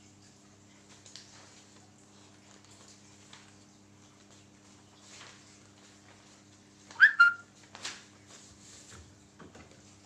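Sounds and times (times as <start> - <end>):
high-pitched chirps: 7.0 - 7.4.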